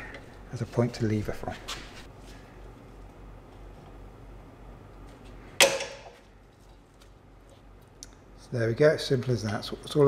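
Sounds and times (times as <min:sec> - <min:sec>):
metal spring snapping: 0:05.6 - 0:06.2.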